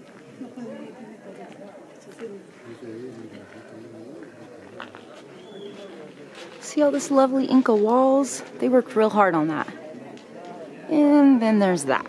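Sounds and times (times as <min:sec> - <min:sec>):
distant people talking: 0:00.0 - 0:12.0.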